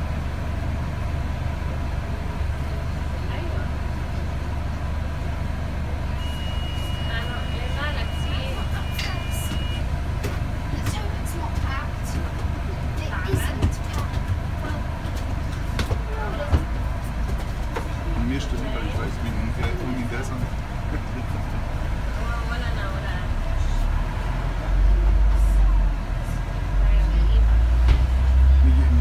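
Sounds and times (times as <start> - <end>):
bus engine rumble: 0.0 - 29.0
passengers talking quietly: 2.6 - 4.2, 4.9 - 9.6, 10.4 - 29.0.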